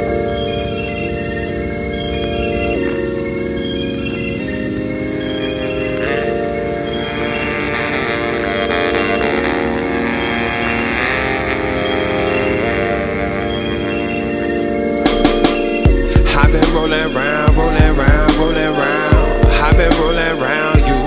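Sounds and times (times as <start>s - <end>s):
instrumental hip-hop music: 0.0s - 21.0s.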